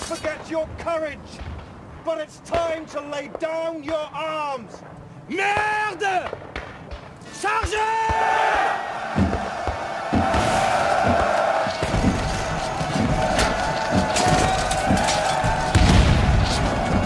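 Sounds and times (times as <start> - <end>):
man shouting: 7.3 - 8.6
soldiers shouting battle cry: 7.3 - 17.0
cannon fire booms: 9.1 - 17.0.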